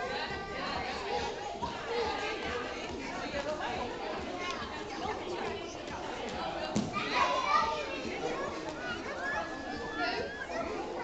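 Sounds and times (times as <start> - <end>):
children playing in gym hall: 0.0 - 11.0
high child's voice: 7.0 - 11.0.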